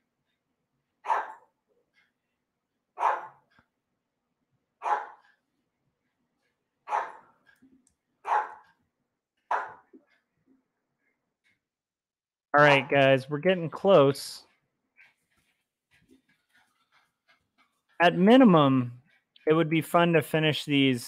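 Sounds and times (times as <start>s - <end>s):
dog barking: 1.0s - 1.5s, 3.0s - 3.6s, 4.8s - 5.3s, 6.8s - 7.3s, 8.2s - 8.8s, 9.5s - 9.9s.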